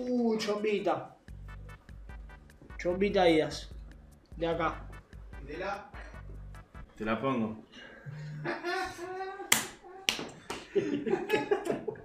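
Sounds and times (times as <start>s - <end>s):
man laughing: 8.1s - 10.0s, 10.6s - 12.0s
hands slapping: 9.5s - 10.8s.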